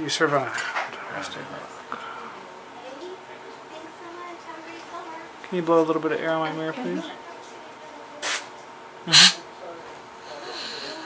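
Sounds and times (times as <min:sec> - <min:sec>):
air syringe puff: 0:08.2 - 0:08.5, 0:09.1 - 0:09.4.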